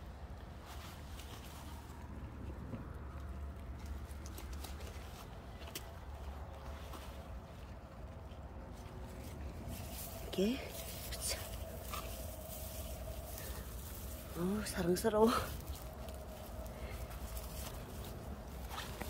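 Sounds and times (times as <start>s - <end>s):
steady low rumble: 0.0s - 19.0s
faint rustles: 0.2s - 19.0s.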